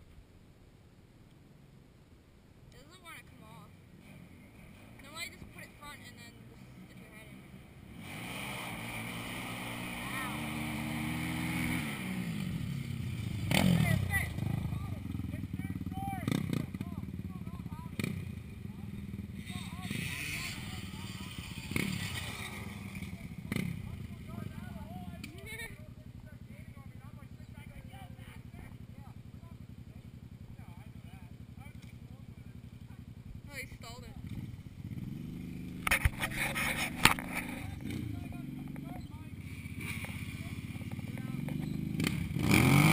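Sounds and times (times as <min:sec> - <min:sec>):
small engines revving: 0:04.0 - 0:25.8, 0:27.2 - 0:42.9.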